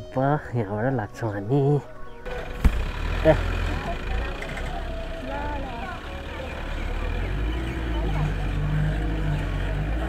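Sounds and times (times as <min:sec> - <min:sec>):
motorcycle engine idling: 0:02.2 - 0:10.0
faint background voices: 0:03.2 - 0:10.0.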